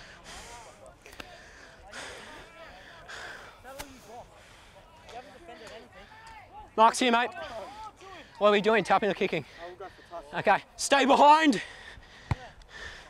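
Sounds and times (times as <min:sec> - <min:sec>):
close breaths: 0:00.0 - 0:06.6, 0:07.3 - 0:08.6, 0:09.2 - 0:10.8, 0:11.5 - 0:13.0.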